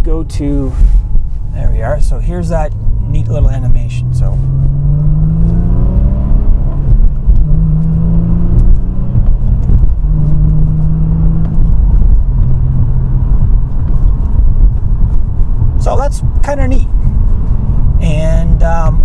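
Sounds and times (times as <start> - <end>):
car engine accelerating: 0.2 - 19.0.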